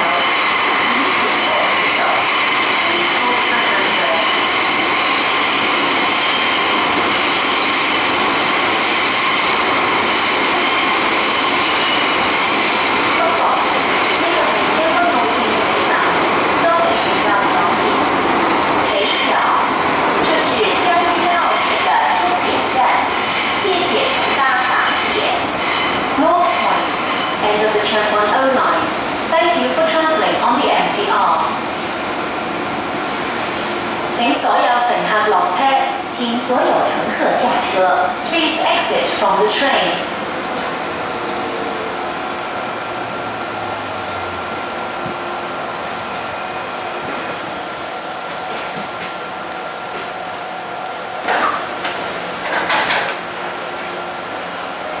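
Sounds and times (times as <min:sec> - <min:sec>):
train rumble and rush: 0:00.0 - 0:55.0
announcement voice: 0:34.2 - 0:40.1
sliding train doors opening: 0:51.2 - 0:53.9.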